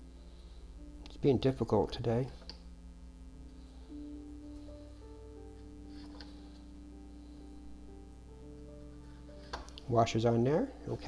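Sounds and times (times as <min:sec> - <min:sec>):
ambient synth music: 0:00.0 - 0:11.0.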